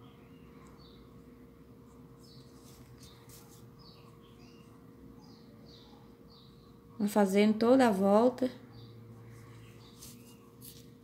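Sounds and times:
low steady hum: 0:00.0 - 0:11.0
yarn rustling: 0:01.9 - 0:04.1, 0:09.3 - 0:11.0.

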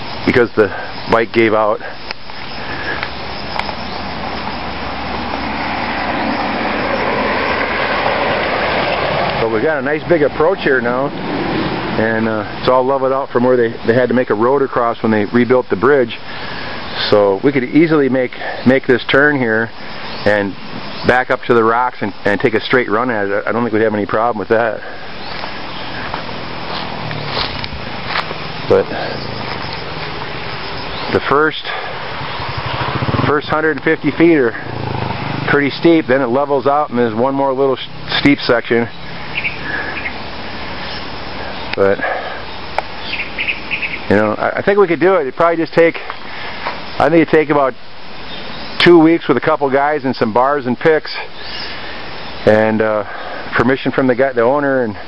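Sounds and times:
rushing outdoor noise: 0:00.0 - 0:55.0
vehicle passing on highway: 0:01.6 - 0:14.6, 0:21.8 - 0:47.0.

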